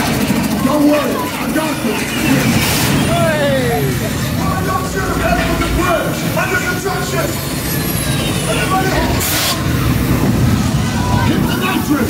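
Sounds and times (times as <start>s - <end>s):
engine rumble: 0.0s - 12.0s
voices: 0.0s - 12.0s.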